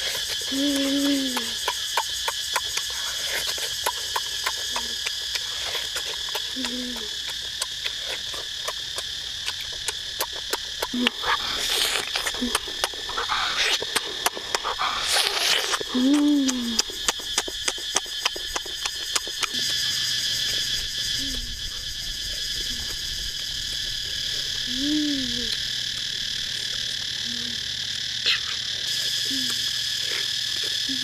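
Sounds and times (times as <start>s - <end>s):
insects chirring: 0.0s - 31.0s
person humming mmm: 0.4s - 1.7s, 6.4s - 7.2s, 10.8s - 17.0s, 24.7s - 25.6s, 27.2s - 27.6s, 29.1s - 29.8s, 30.8s - 31.0s.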